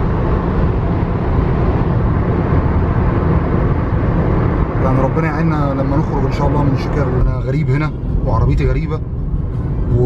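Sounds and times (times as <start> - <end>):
car cabin road noise: 0.0 - 10.0.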